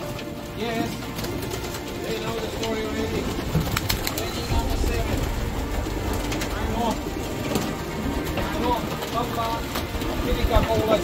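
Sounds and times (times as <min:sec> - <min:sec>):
pigeons fluttering and shuffling: 0:00.0 - 0:11.0.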